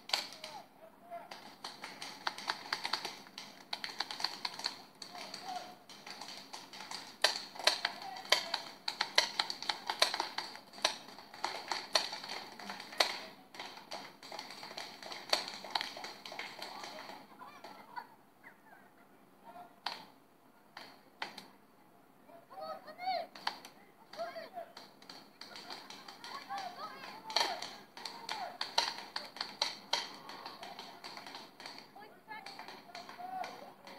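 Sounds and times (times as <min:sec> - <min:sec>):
paintball markers firing: 0:00.0 - 0:00.6, 0:01.3 - 0:17.8, 0:23.3 - 0:33.9.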